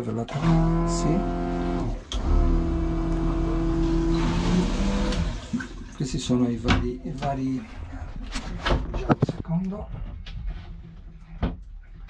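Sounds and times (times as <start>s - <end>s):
toilet pump motor humming: 0.0s - 6.0s.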